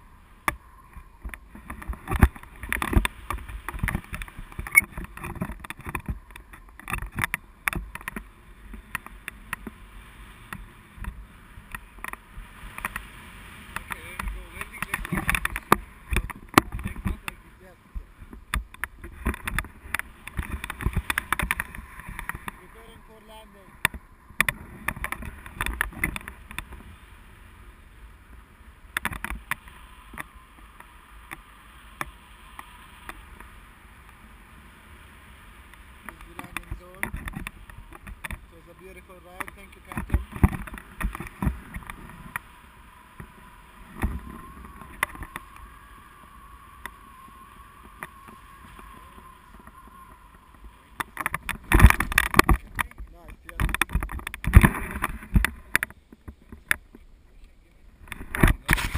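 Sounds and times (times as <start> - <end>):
wind buffeting microphone: 0.0 - 57.0
crackles and thumps: 0.0 - 58.9.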